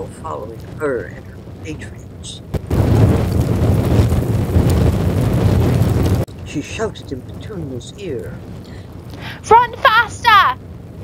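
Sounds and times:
deep explosion roar: 0.6 - 9.4.

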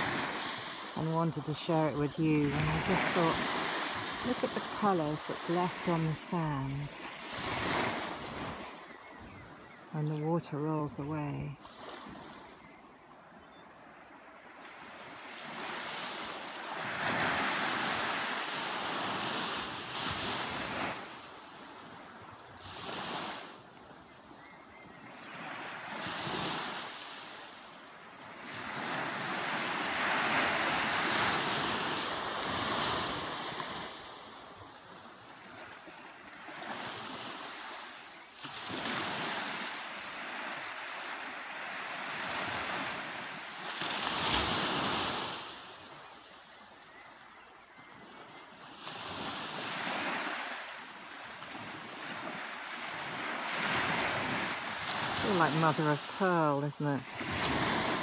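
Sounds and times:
waves breaking on beach: 0.0 - 58.0.

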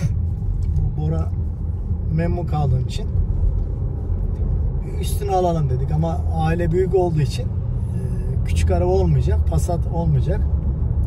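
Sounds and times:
car cabin road and engine rumble: 0.0 - 11.0.

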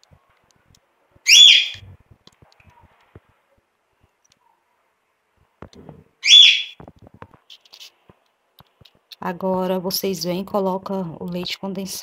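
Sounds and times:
high chirp: 1.3 - 1.9, 6.2 - 6.8.

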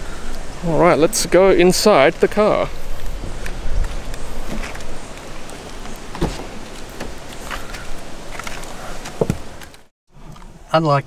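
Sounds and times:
footsteps: 2.6 - 9.9
handling noise: 2.9 - 9.9
car door opening: 5.8 - 7.3.

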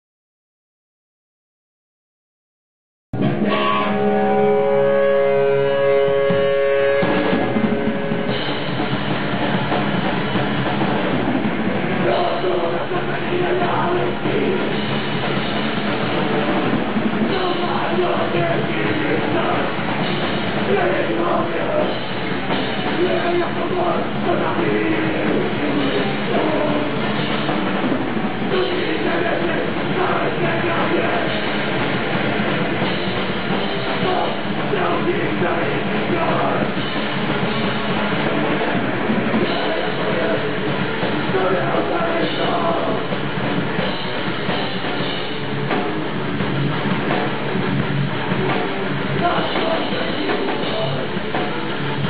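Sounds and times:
distorted electric guitar chord: 3.2 - 13.0, 14.2 - 52.0
band playing heavy music: 3.2 - 52.0.

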